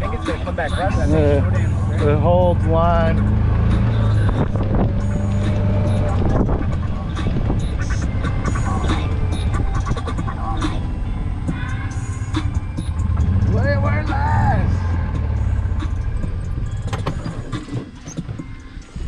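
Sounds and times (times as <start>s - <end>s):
golf cart rumbling: 0.0s - 19.0s
cart knocks and rattles: 16.8s - 18.6s.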